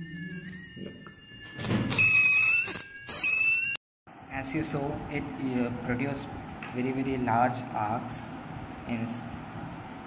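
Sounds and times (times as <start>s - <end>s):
flyback transformer whine: 0.0s - 3.8s.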